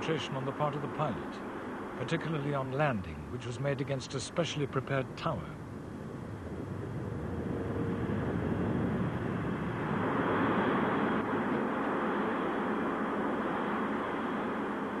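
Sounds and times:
jet engine roar: 4.6 - 15.0.

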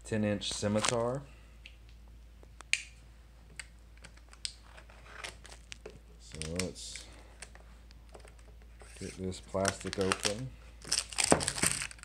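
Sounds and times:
shrink-wrap crinkling and clicks: 0.5 - 1.1, 4.0 - 12.0.

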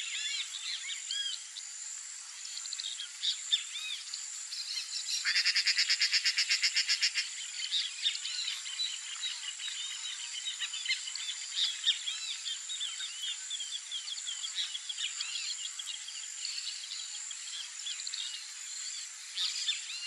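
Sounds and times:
high insect drone: 0.0 - 20.0.

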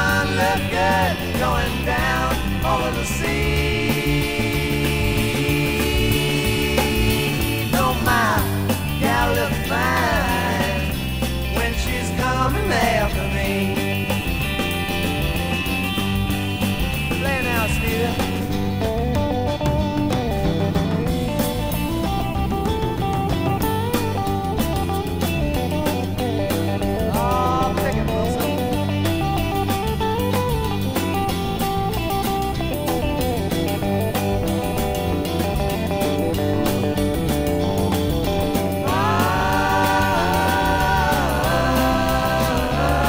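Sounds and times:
bass and drum backing: 0.0 - 43.0
lead electric guitar bending notes: 0.0 - 43.0.

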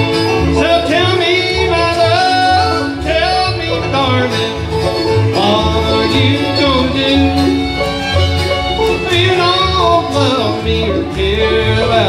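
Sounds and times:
acoustic guitar: 0.0 - 12.0
banjo picking: 0.0 - 12.0
upright bass: 0.0 - 12.0.

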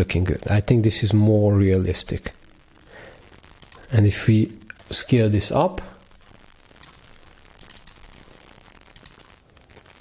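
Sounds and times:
faint room hiss: 0.0 - 10.0
faint clicks: 3.6 - 3.9, 6.8 - 8.1, 8.9 - 9.3.

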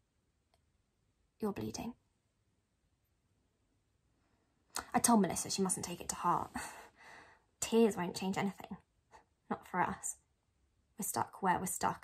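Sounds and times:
woman speaking: 1.4 - 2.0, 4.8 - 6.9, 7.6 - 8.8, 9.5 - 10.2, 11.0 - 12.0
woman breathing in: 6.6 - 7.5.

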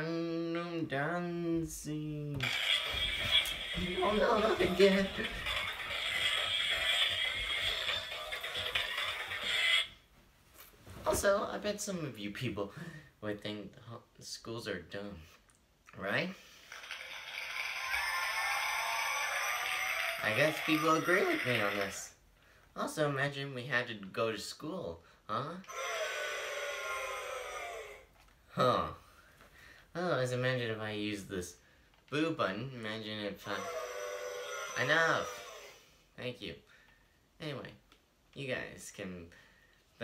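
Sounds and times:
tinny dance music from toy speaker: 2.4 - 9.9, 16.7 - 22.1, 25.7 - 27.7, 33.4 - 35.8.

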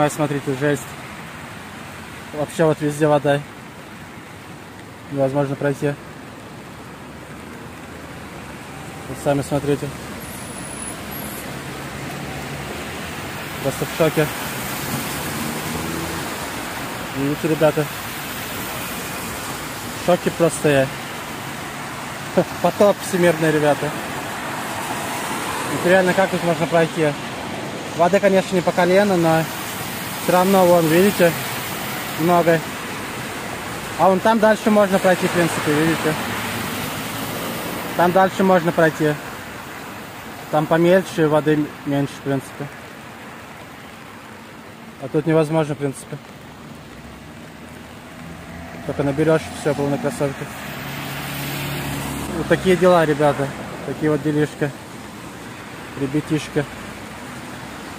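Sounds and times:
heavy rain on standing water: 0.0 - 57.9.

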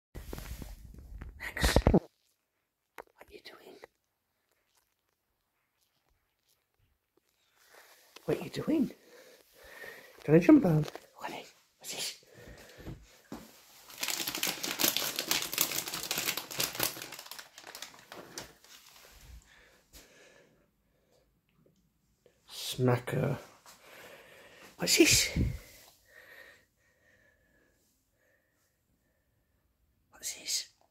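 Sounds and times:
person whispering: 1.2 - 2.1, 3.0 - 4.0, 7.6 - 12.8, 22.5 - 23.5, 24.7 - 25.8, 30.1 - 30.9
treat packet crinkling: 13.7 - 19.3.

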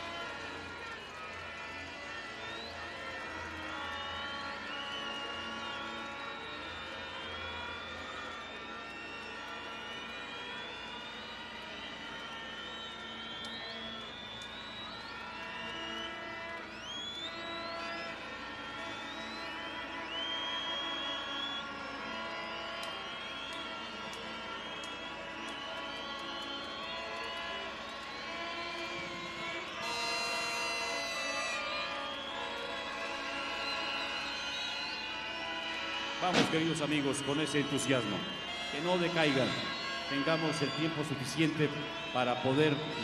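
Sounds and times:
short rising whistles: 4.0 - 18.2, 18.9 - 27.5
crowd din: 36.2 - 41.1.

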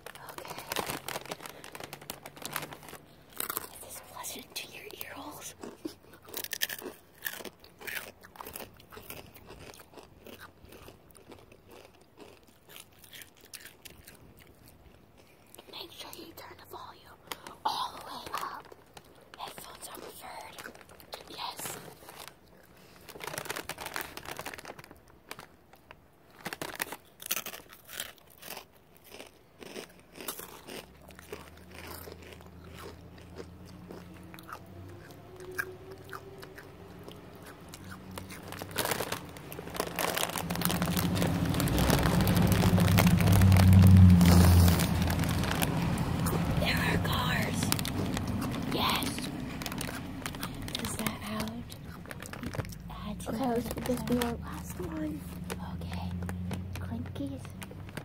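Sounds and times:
low whispering: 0.0 - 1.5, 3.6 - 5.6, 44.1 - 51.8
mouth clicks and crackles: 0.0 - 58.0
low hum: 32.4 - 57.9.

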